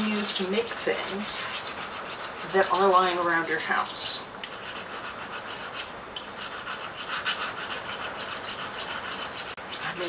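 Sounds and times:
file rasping on metal: 0:00.0 - 0:10.0.

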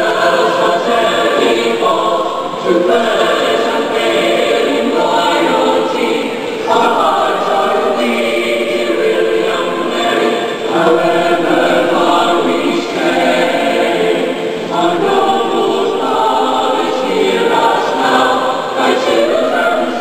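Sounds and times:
choir singing long notes: 0:00.0 - 0:20.0.

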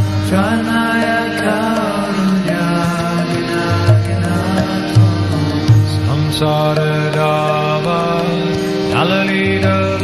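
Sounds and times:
devotional chanting: 0:00.0 - 0:10.0
drum strokes: 0:00.0 - 0:10.0.

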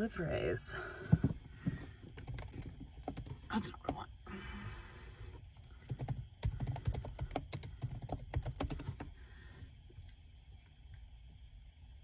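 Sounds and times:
typing on computer keyboard: 0:02.2 - 0:03.4, 0:05.6 - 0:09.0.

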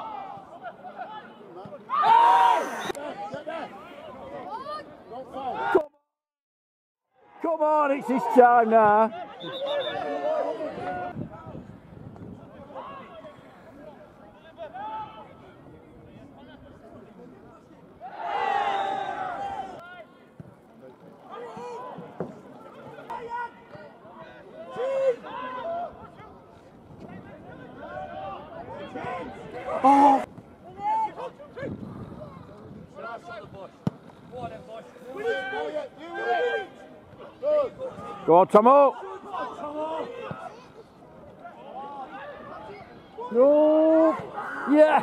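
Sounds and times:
football crowd shouting: 0:00.0 - 0:05.9, 0:07.2 - 0:11.6, 0:18.0 - 0:20.3, 0:21.2 - 0:26.5, 0:27.1 - 0:31.8, 0:34.7 - 0:45.0.

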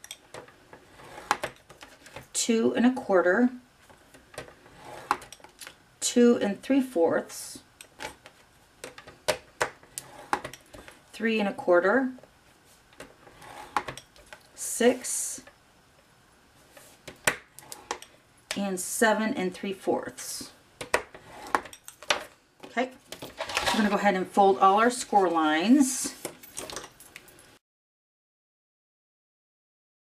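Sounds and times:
paper trimmer scraping: 0:13.2 - 0:14.0.

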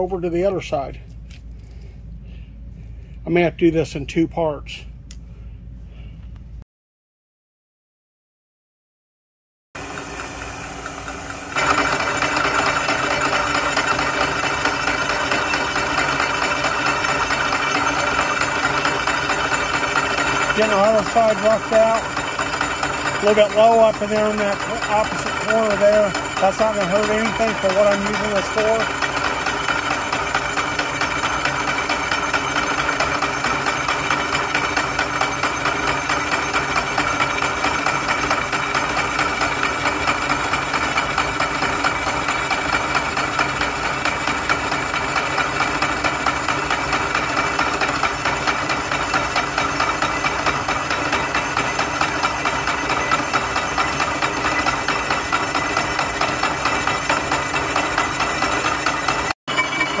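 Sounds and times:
milling machine drone: 0:09.8 - 1:00.0.

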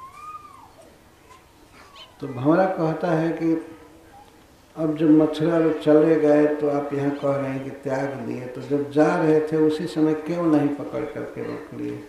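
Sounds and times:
long animal call: 0:00.0 - 0:00.8.

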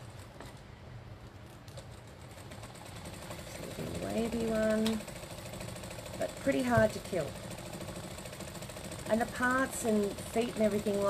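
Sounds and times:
sewing machine hum: 0:01.7 - 0:11.0
sewing machine needle ticking: 0:02.4 - 0:11.0.

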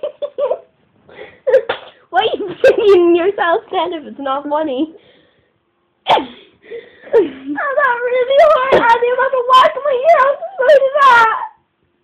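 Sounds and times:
woman sneezing: 0:06.0 - 0:06.5.

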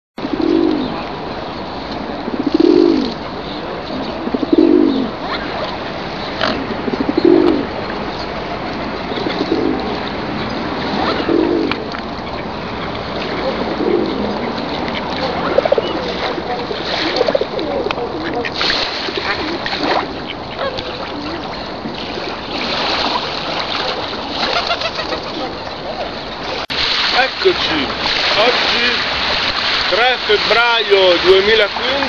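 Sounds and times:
pigeons cooing: 0:00.2 - 0:01.2, 0:02.0 - 0:07.8, 0:09.0 - 0:10.2, 0:10.9 - 0:21.5, 0:24.4 - 0:26.2
outdoor background hiss: 0:00.2 - 0:32.0.

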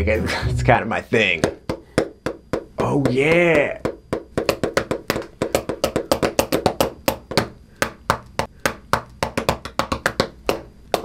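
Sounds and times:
pens tapping on a desk: 0:01.7 - 0:11.0.

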